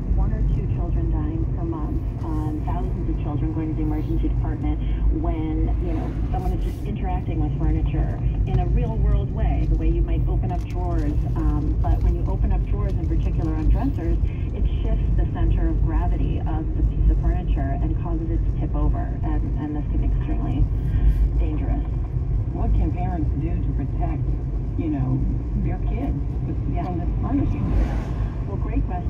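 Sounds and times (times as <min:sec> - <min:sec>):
voice talking from car radio: 0:00.0 - 0:21.9, 0:24.8 - 0:29.0
car engine and tyre rumble: 0:00.0 - 0:29.0.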